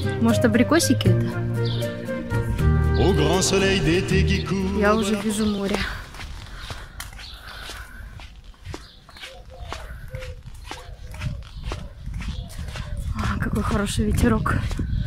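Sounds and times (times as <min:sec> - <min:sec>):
song: 0:01.4 - 0:05.5
wind buffeting microphone: 0:04.5 - 0:15.0.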